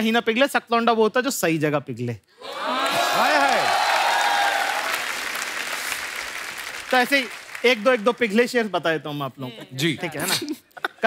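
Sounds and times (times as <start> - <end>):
audience applauding and cheering: 2.4 - 8.8.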